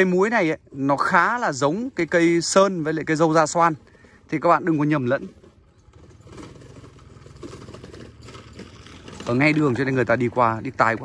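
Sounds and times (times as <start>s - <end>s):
small motorbike engine running: 2.0s - 11.0s.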